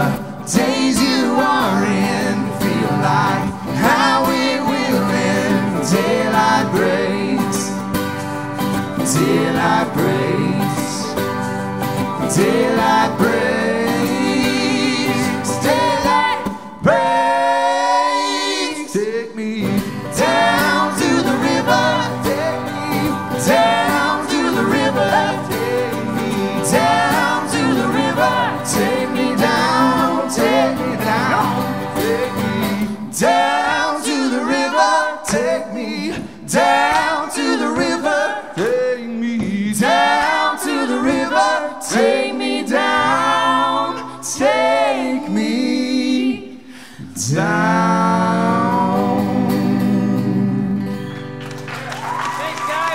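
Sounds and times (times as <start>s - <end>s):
woman singing lead vocal: 0.0s - 7.8s, 12.2s - 19.4s, 20.1s - 50.7s
strummed acoustic guitar: 0.0s - 18.4s, 19.5s - 42.1s, 47.8s - 51.8s
men singing harmony: 0.0s - 51.0s
mandolin: 19.7s - 33.4s.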